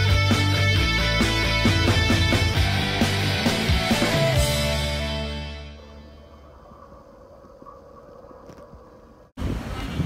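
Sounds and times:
music: 0.0 - 6.4
wind buffeting microphone: 7.0 - 10.0.

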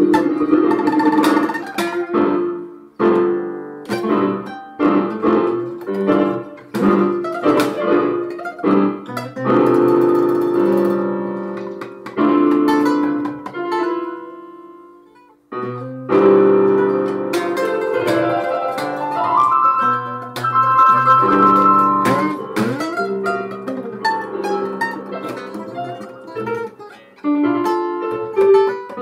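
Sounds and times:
electronic keyboard playing: 0.0 - 29.0.

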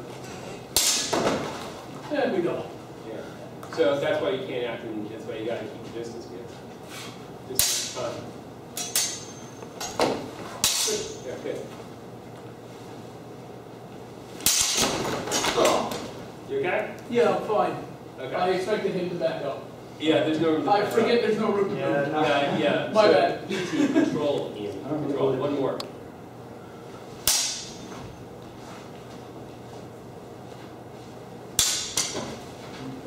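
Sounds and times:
sword blades clashing: 0.8 - 1.2, 7.6 - 8.0, 8.8 - 10.0, 10.6 - 11.2, 14.4 - 15.0, 27.2 - 27.9, 31.6 - 32.2.

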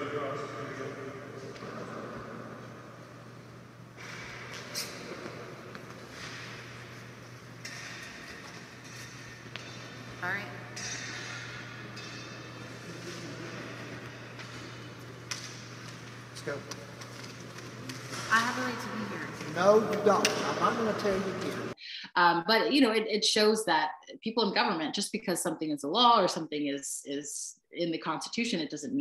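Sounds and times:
steady low hum: 0.0 - 21.8.

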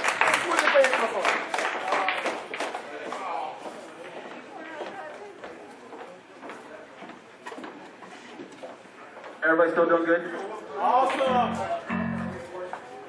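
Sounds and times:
scattered claps: 0.0 - 3.3
audience chatter: 10.4 - 13.0.

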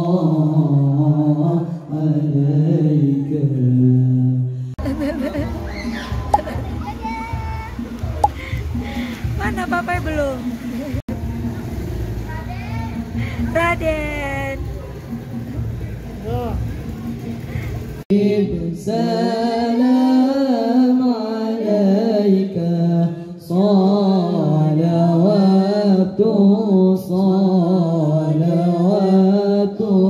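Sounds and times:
people's voices: 4.8 - 18.0
boys chanting through loudspeaker: 18.1 - 30.0.

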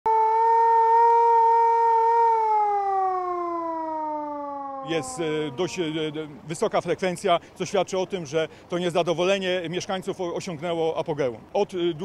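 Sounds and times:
siren winding down: 0.1 - 6.2.

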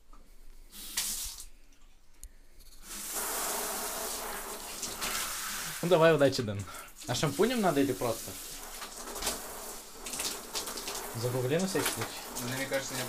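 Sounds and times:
tap water running into basin: 2.8 - 13.0
short rush of water: 2.9 - 6.2, 6.8 - 13.0.

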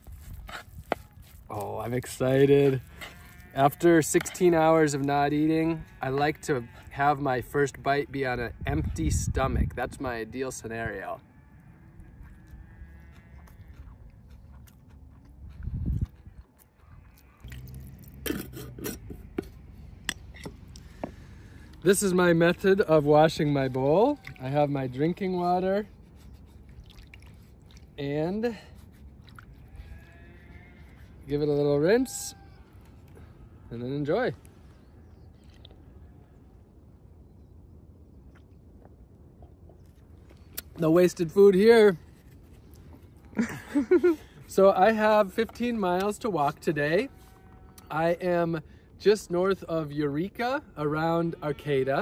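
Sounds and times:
faint chewing: 11.6 - 21.8, 25.8 - 31.3, 35.2 - 36.0, 42.0 - 44.4
person sipping and swallowing: 13.4 - 19.6, 26.6 - 27.9.

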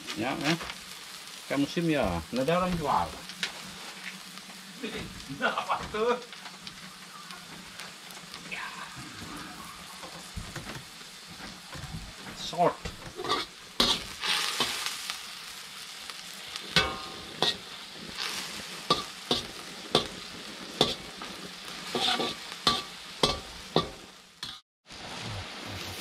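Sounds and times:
meat sizzling in wok: 0.0 - 26.0
metal spatula scraping wok: 12.4 - 15.2, 16.2 - 24.6.

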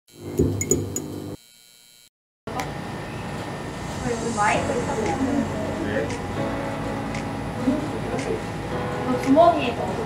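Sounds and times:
electric hum: 0.1 - 10.0.

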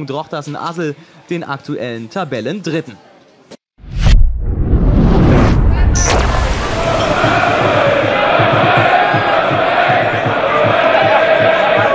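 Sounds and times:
crowd chanting in unison: 6.2 - 11.9.

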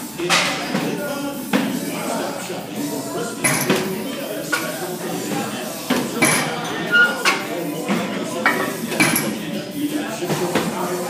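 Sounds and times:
background chatter: 0.0 - 11.0
weight plates clinking and clanking: 6.0 - 9.4.

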